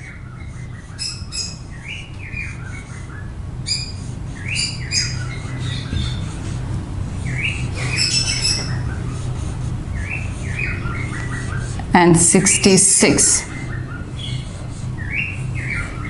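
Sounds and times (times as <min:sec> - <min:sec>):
marker squeaking on a whiteboard: 0:00.0 - 0:11.9, 0:13.4 - 0:16.0
steady low hum: 0:00.0 - 0:16.0.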